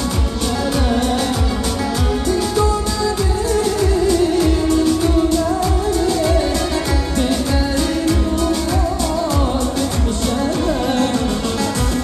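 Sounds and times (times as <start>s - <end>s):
electronic keyboard: 0.0s - 12.0s
heavy drum beat: 0.0s - 12.0s
man singing: 0.0s - 12.0s.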